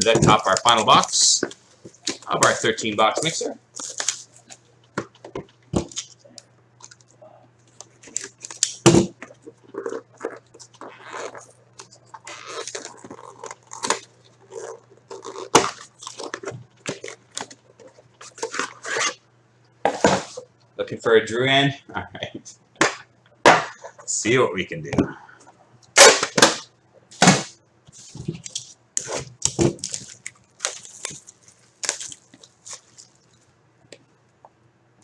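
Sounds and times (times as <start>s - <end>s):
plastic wrap crinkling and tearing: 2.0s - 4.6s, 9.6s - 19.2s, 28.4s - 33.5s.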